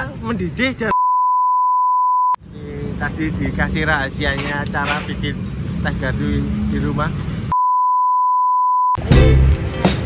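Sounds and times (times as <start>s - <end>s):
steady single-pitch beep: 0.9s - 2.4s, 7.5s - 9.0s.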